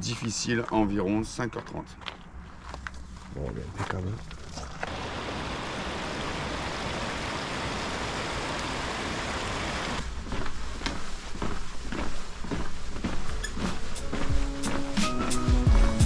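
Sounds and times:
rocky stream rushing: 0:04.8 - 0:10.0.

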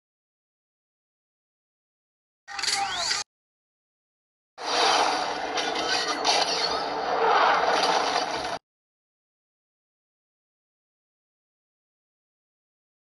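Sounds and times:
dense noisy sound effect: 0:04.6 - 0:08.6.

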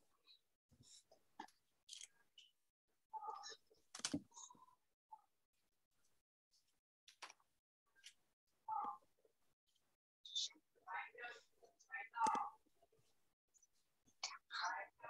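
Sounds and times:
person whispering: 0:10.3 - 0:12.6, 0:14.2 - 0:15.0.

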